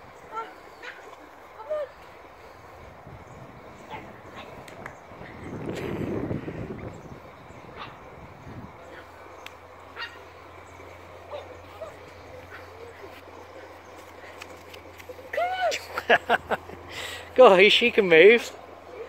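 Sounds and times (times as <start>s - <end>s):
puppy yipping: 10.0s - 10.2s.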